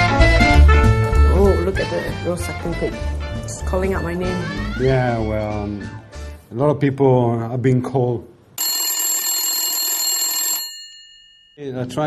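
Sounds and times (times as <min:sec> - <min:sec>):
telephone bell ringing: 0:08.6 - 0:11.8.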